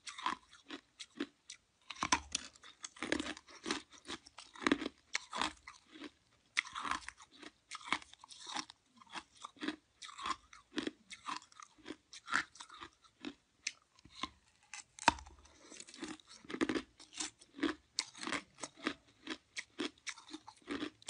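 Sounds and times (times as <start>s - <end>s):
ice being chewed: 0.0s - 21.0s.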